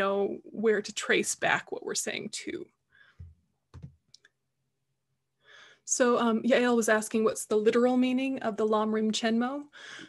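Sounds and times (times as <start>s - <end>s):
faint clicks and soft knocks: 3.1s - 4.5s.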